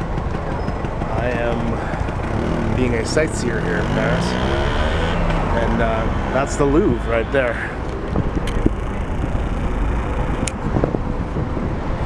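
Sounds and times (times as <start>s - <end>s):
bus engine rumble: 0.0s - 4.3s, 5.2s - 12.0s
wind buffeting microphone: 5.8s - 12.0s.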